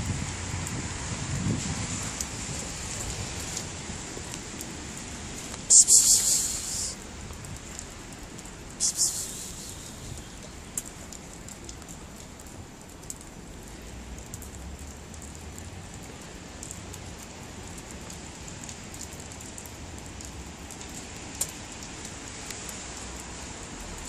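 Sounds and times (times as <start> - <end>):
light rain on paving: 0.0 - 24.0
sharp ticks: 5.6 - 7.0, 7.8 - 12.0.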